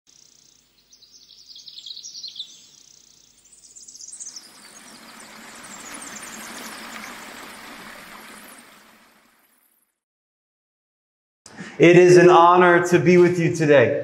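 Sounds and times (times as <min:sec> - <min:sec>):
sparkly chirping: 0:00.1 - 0:09.9.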